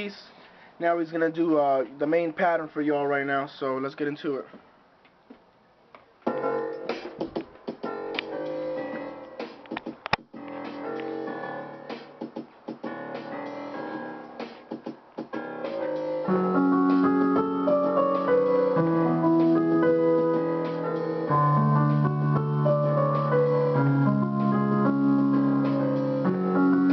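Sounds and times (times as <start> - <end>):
piano-like keyboard notes: 6.3 - 14.6, 15.3 - 26.9
programmed drum pattern: 6.3 - 26.9
sustained keyboard notes: 16.2 - 26.9.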